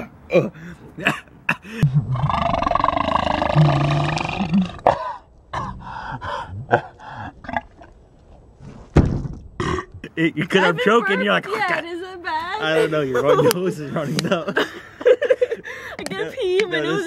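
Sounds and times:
person burping loudly: 1.6 - 5.8, 6.4 - 7.9, 9.6 - 10.0.

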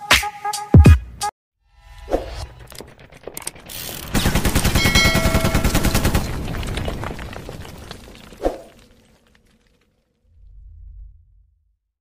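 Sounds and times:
machine-gun fire: 3.6 - 7.2
high ringing tone: 4.8 - 5.7.

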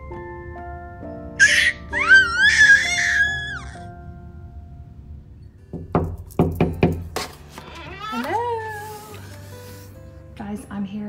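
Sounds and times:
high wavering baby-like giggle: 1.4 - 3.9
door knocks: 5.7 - 7.2.

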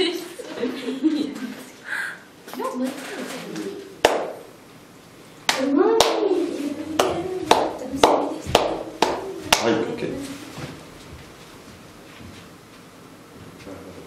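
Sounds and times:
hand claps keeping time: 4.0 - 4.4, 5.5 - 6.3, 7.0 - 9.8.

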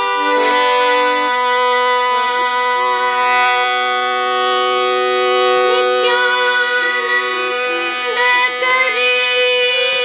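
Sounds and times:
harmonium playing held chord: 0.0 - 10.0.

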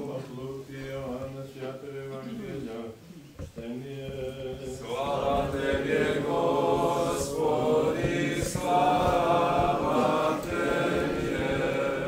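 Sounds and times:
voices chanting in held notes: 3.8 - 12.0.

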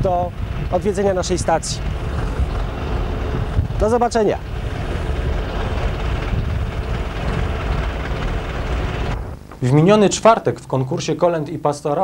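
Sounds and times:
low rumble: 0.0 - 10.2.

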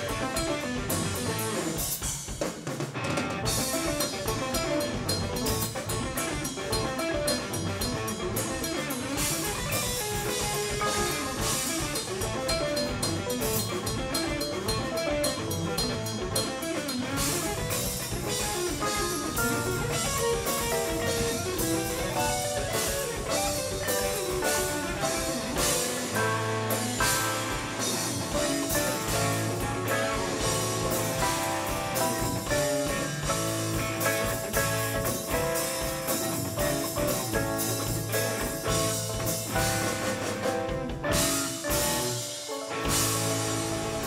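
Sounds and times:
electric bass: 0.0 - 2.2, 3.0 - 44.0
drum kit: 0.0 - 44.0
electric guitar: 0.0 - 44.0
keyboards: 0.0 - 44.0.

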